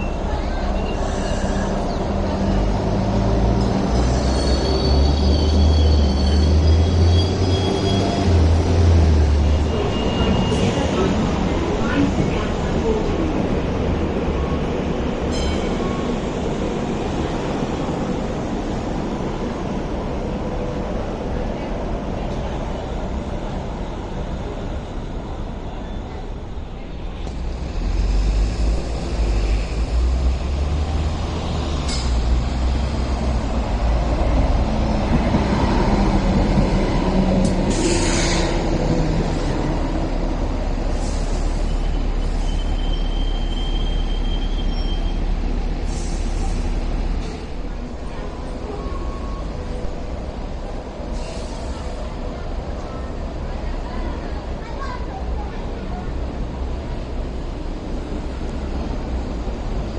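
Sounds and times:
light rail train rumble: 0:00.0 - 0:59.9.

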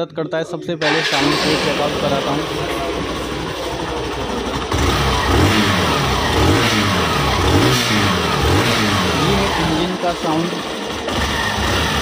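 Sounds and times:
motorcycle engine idling and revving: 0:00.8 - 0:12.0.

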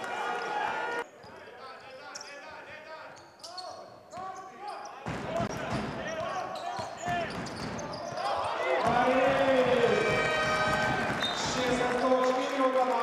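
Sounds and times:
crowd cheering and shouting: 0:00.0 - 0:01.0, 0:08.2 - 0:13.0
sneakers squeaking on court: 0:03.2 - 0:09.4
basketball bouncing: 0:05.1 - 0:08.2, 0:08.8 - 0:12.0.

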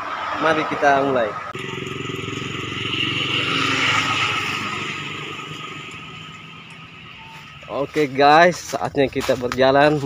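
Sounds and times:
small motorcycle engine riding off: 0:01.6 - 0:07.0.

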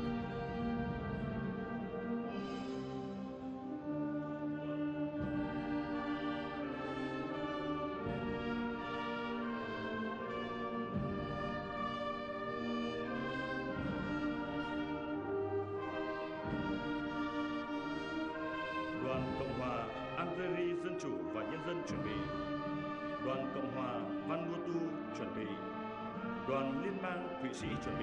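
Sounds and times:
solemn brass orchestra music: 0:00.0 - 0:28.0.

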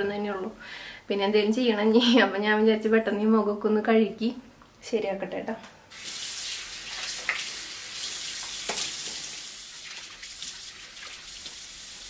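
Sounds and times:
water running from tap: 0:05.9 - 0:12.0.

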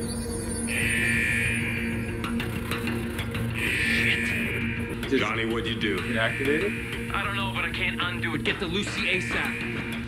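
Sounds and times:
high sustained tone: 0:00.0 - 0:05.1
low drone: 0:00.0 - 0:08.2.

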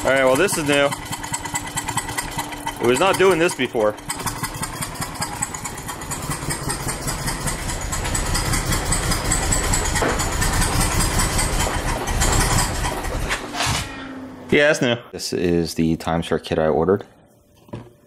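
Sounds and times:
misfiring engine pulsing: 0:00.0 - 0:14.5
engine backfire pops: 0:06.3 - 0:14.0.

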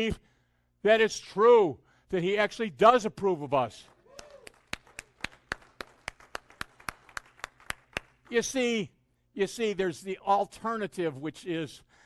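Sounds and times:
hands clapping: 0:03.8 - 0:08.3.

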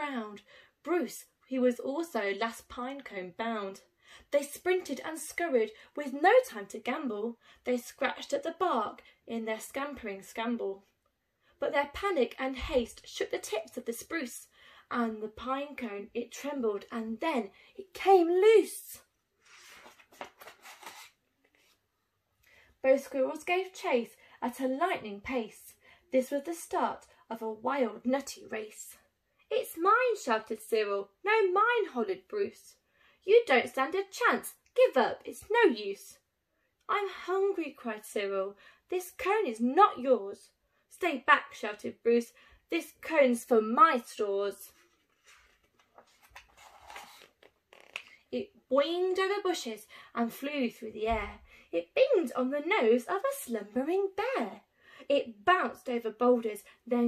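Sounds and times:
paper page turning: 0:19.4 - 0:21.8, 0:44.7 - 0:48.1.

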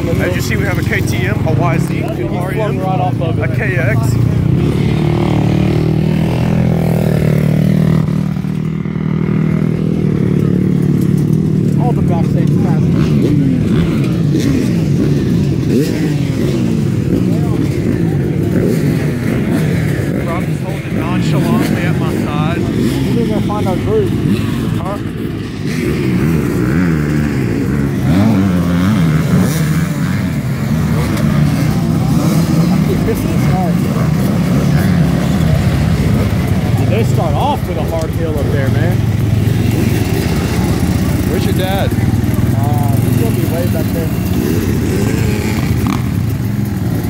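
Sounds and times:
dirt bike engines idling: 0:00.0 - 0:47.0
engines blipping throttles: 0:00.0 - 0:47.0.

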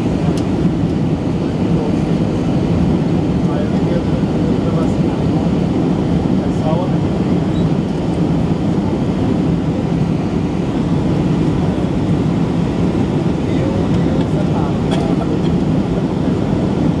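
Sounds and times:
jet airliner cabin rumble: 0:00.0 - 0:17.0.

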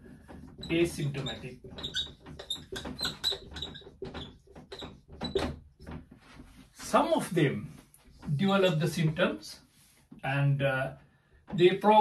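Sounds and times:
marker squeaking on whiteboard: 0:00.0 - 0:07.0.

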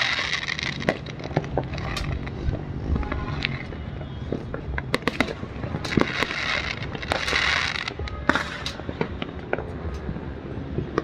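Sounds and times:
fireworks banging and popping: 0:00.0 - 0:11.0.

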